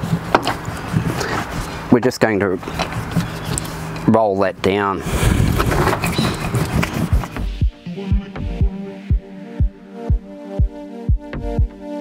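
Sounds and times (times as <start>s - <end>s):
paint roller rolling over foil sheet: 5.0s - 7.4s.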